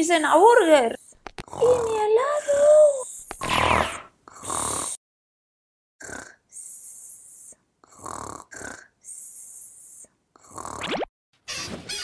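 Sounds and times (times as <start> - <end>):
cartoon snoring: 0.9 - 5.0, 6.0 - 11.1.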